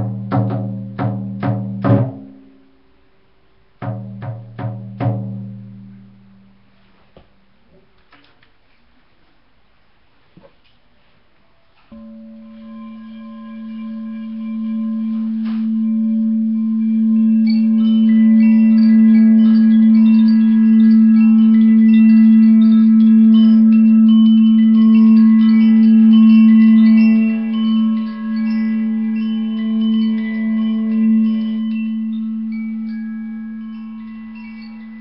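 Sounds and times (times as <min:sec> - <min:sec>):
short high ringing tones: 0:11.4 - 0:35.0
singing bowl steady tone: 0:11.4 - 0:35.0.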